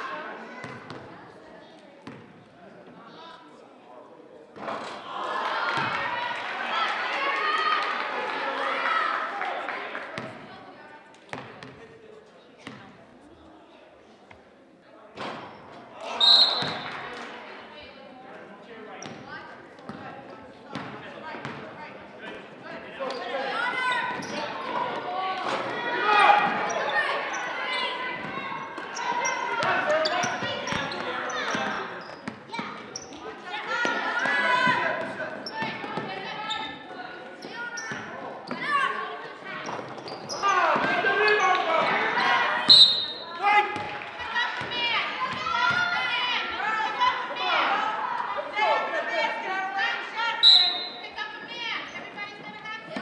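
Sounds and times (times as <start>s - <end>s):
voices calling out: 23.2s - 52.1s.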